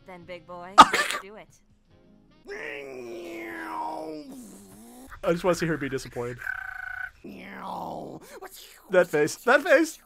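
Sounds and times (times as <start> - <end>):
long vocal cry: 0.8 - 1.2, 2.5 - 5.2.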